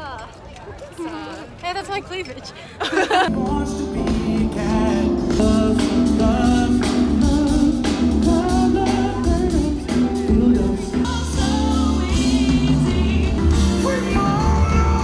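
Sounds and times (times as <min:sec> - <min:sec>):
live band music: 0:03.3 - 0:15.0
person singing: 0:03.3 - 0:15.0.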